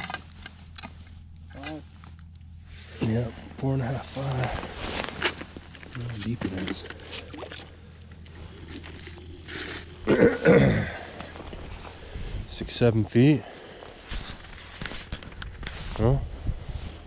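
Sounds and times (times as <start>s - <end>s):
indistinct voices: 5.9s - 13.7s.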